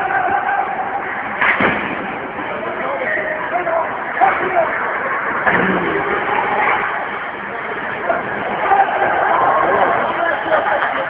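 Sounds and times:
dense background noise: 0.0 - 11.0
indistinct voices: 2.2 - 11.0.

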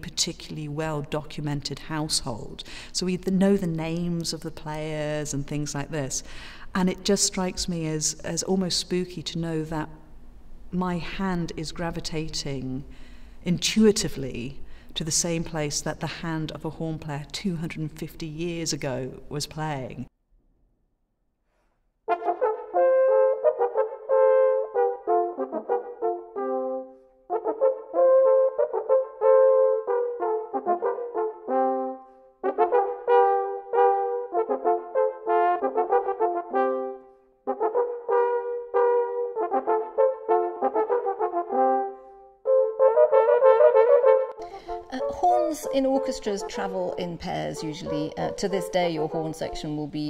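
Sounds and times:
natural horns duet: 22.1 - 50.0.

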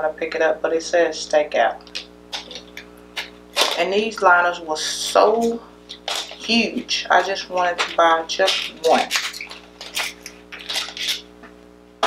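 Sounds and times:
faint steady hum: 0.0 - 12.0
plastic clicks and rustles: 7.6 - 11.2.

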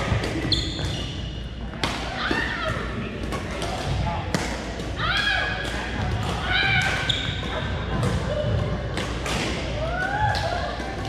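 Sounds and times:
sneakers squeaking: 0.0 - 1.7, 6.4 - 9.1
voices in a hall: 0.0 - 11.0.

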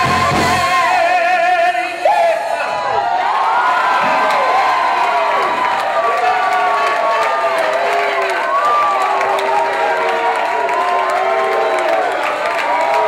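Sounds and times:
audience cheering and shouting: 0.0 - 13.0
people clapping: 3.2 - 13.0.

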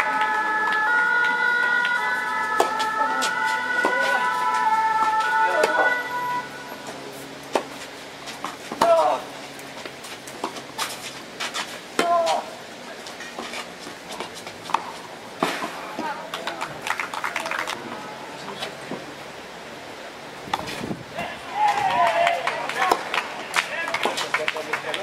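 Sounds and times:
siren stepping between pitches: 0.0 - 6.8.

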